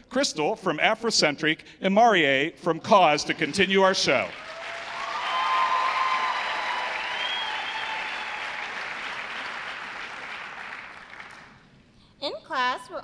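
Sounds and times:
audience applauding: 0:03.3 - 0:11.6.

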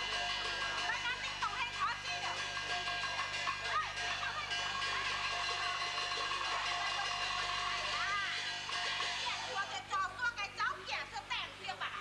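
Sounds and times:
videotape hiss: 0:00.0 - 0:12.0.

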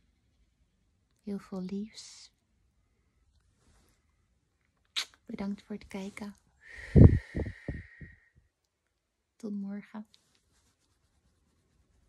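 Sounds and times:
faint soft rustles: 0:02.8 - 0:04.8, 0:05.4 - 0:08.2, 0:09.5 - 0:12.0.

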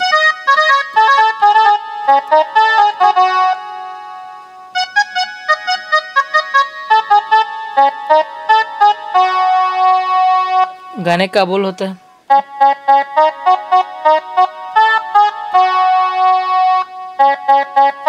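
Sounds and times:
mini keyboard melody: 0:00.0 - 0:18.0.

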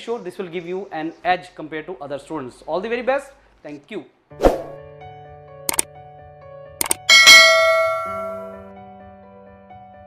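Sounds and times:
soft background music: 0:00.0 - 0:10.0
mouse click sound effects: 0:06.8 - 0:07.1
notification bell ding: 0:06.8 - 0:08.6.

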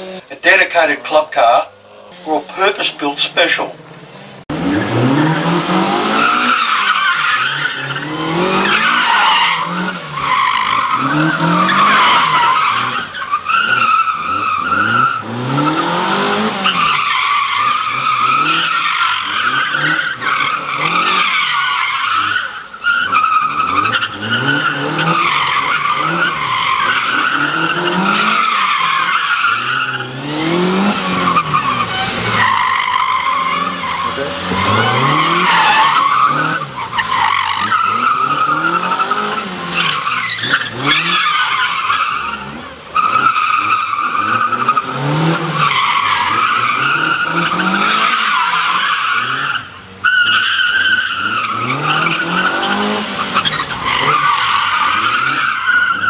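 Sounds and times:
car engine revving: 0:00.0 - 0:56.0
tyres squealing: 0:16.6 - 0:44.9.

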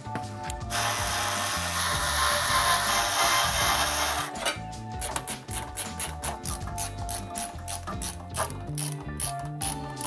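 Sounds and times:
screwdriver rattling on metal: 0:04.4 - 0:10.0.

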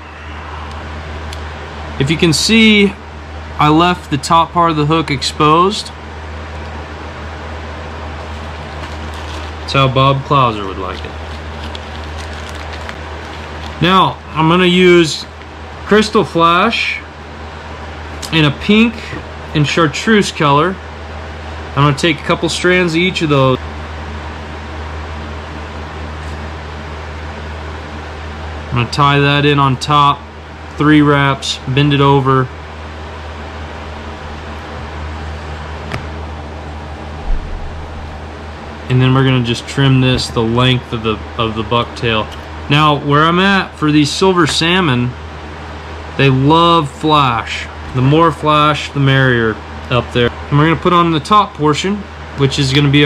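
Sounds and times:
room hum and hiss: 0:00.0 - 0:53.0
low bump: 0:37.2 - 0:38.3.

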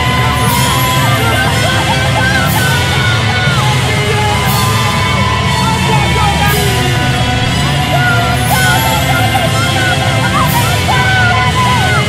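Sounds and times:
cymbal crash: 0:00.0 - 0:12.0
loud rock music with vocals: 0:00.0 - 0:12.0.

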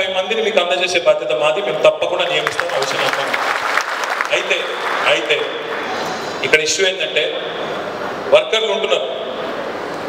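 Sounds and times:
crowd applauding: 0:02.4 - 0:06.4.

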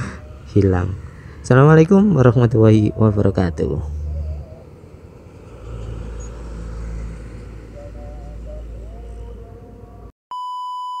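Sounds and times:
faint engine whine: 0:00.0 - 0:10.1
vehicle rumble: 0:00.0 - 0:10.1.

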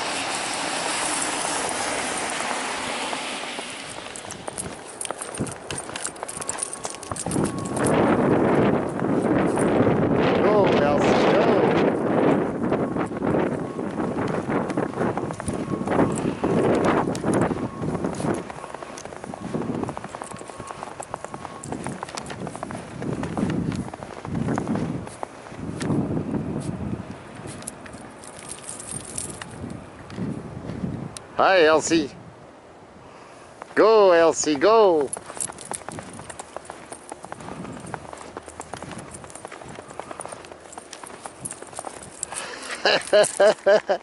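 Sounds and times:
snow crunching: 0:00.0 - 0:10.2, 0:11.2 - 0:26.8, 0:34.0 - 0:43.9.

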